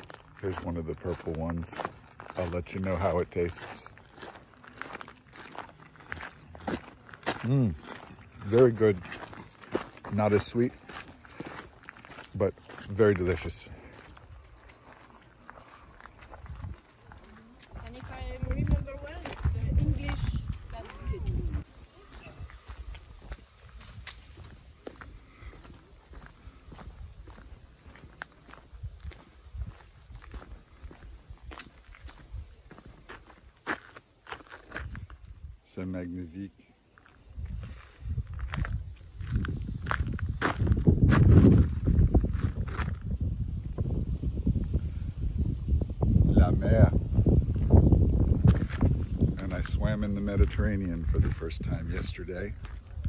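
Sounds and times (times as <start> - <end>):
footsteps on dirt trail: 0.0 - 36.1, 36.8 - 53.0.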